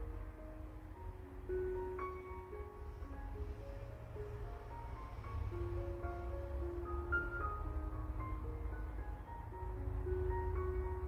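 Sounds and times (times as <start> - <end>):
soft mallet melody: 0.0 - 11.0.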